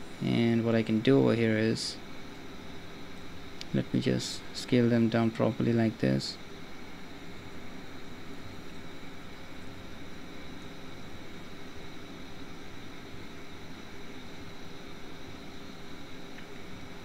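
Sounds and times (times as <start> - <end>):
room noise hum and hiss: 0.0 - 17.0.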